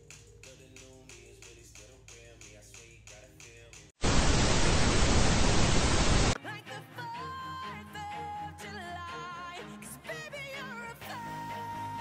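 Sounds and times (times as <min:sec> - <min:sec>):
tv static hiss: 0:04.0 - 0:06.4.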